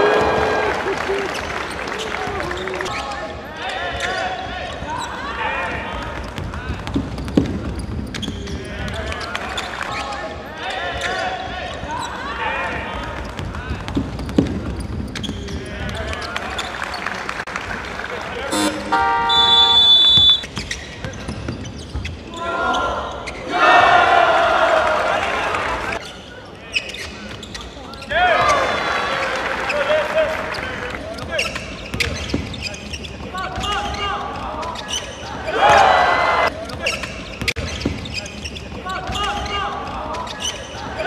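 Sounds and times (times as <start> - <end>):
voices around court: 0.0 - 41.0
basketball bouncing: 5.8 - 9.0, 12.7 - 16.0
electronic game buzzer: 18.5 - 20.4.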